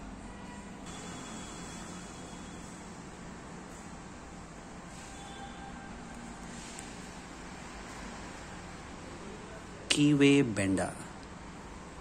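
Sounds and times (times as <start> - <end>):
room hiss and hum: 0.0 - 12.0
man speaking: 9.8 - 11.2.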